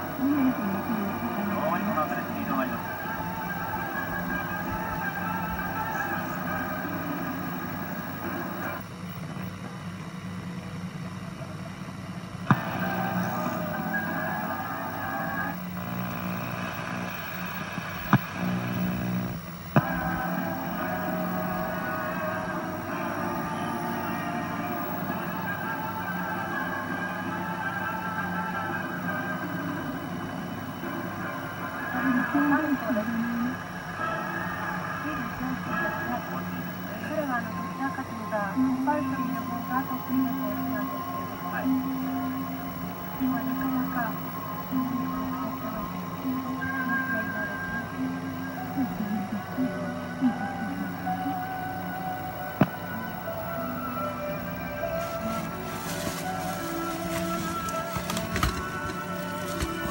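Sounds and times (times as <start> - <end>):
music-like tape playback: 0.0 - 59.9
steady hum: 0.0 - 59.9.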